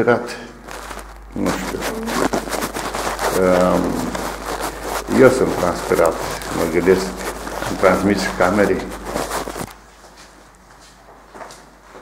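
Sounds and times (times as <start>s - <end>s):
clothing brushing microphone: 0.6s - 9.8s.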